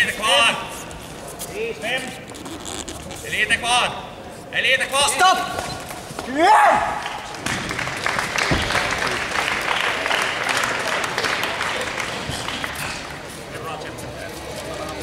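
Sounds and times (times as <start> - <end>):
audience applauding: 7.0 - 13.2.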